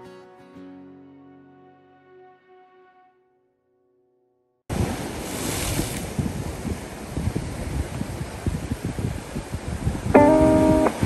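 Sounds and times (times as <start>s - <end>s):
surf washing over rocks: 4.7s - 11.0s
wind buffeting microphone: 4.7s - 11.0s.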